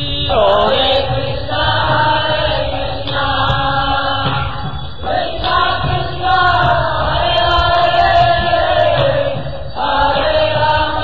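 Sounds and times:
mantra chanting: 0:00.0 - 0:11.0.

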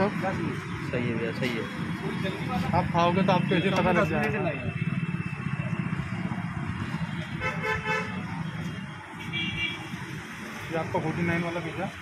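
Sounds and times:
vehicle horn toot: 0:07.4 - 0:08.2.

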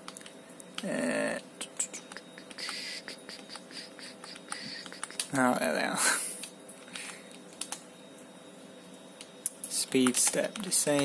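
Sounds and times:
faint steady hum: 0:00.0 - 0:11.0
computer mouse clicks: 0:03.4 - 0:05.4, 0:06.4 - 0:07.8, 0:09.4 - 0:11.0.

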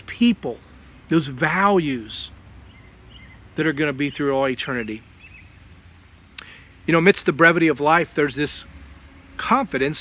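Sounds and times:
man speaking: 0:00.0 - 0:02.4, 0:03.6 - 0:05.0, 0:06.9 - 0:08.7, 0:09.4 - 0:10.0
low outdoor background noise: 0:00.0 - 0:10.0.

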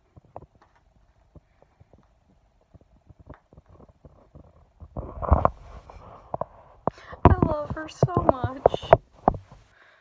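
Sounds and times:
cat scratching fabric: 0:03.9 - 0:09.6.

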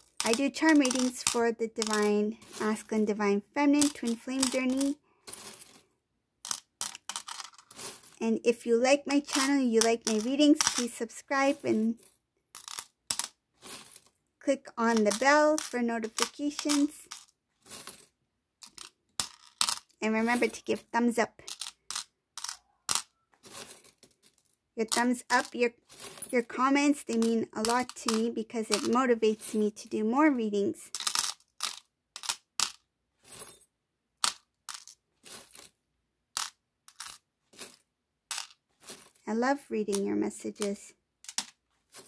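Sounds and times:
small metal charms jingling: 0:00.0 - 0:05.0, 0:14.5 - 0:17.3, 0:20.1 - 0:20.8, 0:24.8 - 0:29.6.

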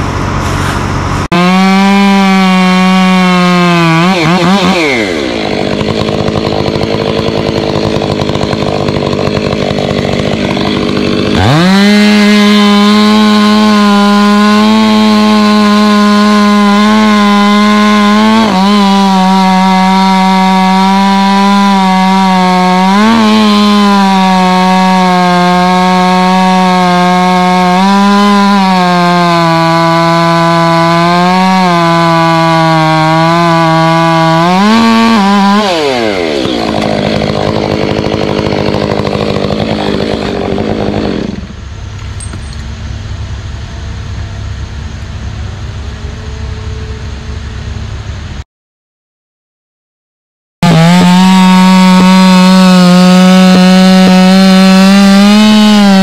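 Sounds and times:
chainsaw cutting tree trunk: 0:00.0 - 0:42.8, 0:50.6 - 0:56.0.

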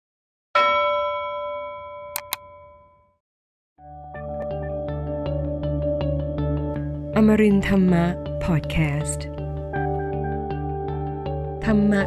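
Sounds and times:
bell-like chime: 0:00.6 - 0:03.2
mouse clicks: 0:02.2 - 0:02.4.

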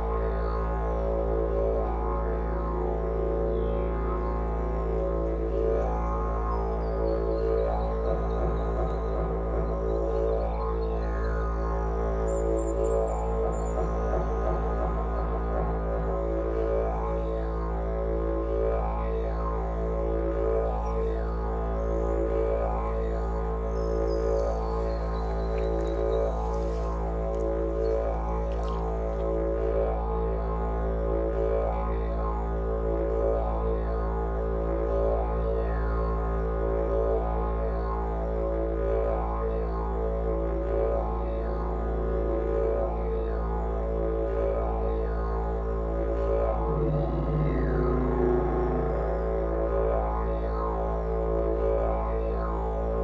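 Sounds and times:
didgeridoo drone: 0:00.0 - 0:53.0.

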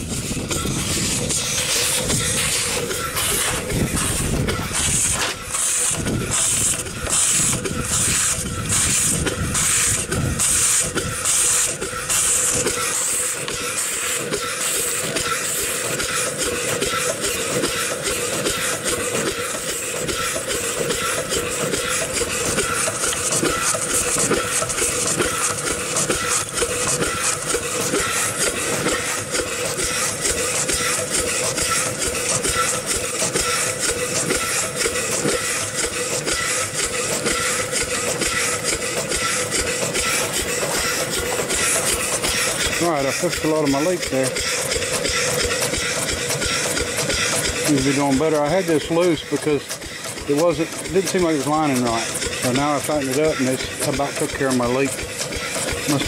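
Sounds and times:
steam engine exhaust beats: 0:00.0 - 0:56.0
steam hissing from a leak: 0:00.0 - 0:56.0
rods and valve gear ticking: 0:00.1 - 0:56.0.

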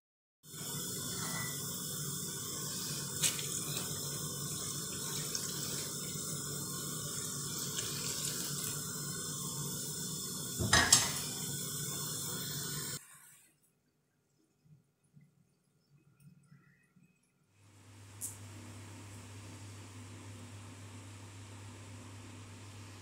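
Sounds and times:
liquid running: 0:00.5 - 0:18.4
loud clunk: 0:10.6 - 0:11.2.

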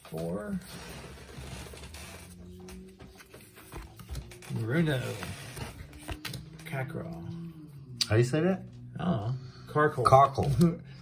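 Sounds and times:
trading cards rustling: 0:00.2 - 0:06.8.

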